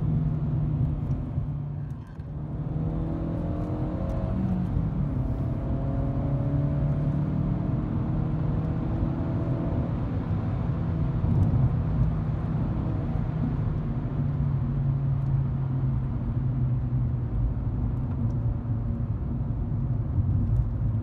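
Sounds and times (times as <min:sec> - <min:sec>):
engine and road drone: 0:00.0 - 0:21.0.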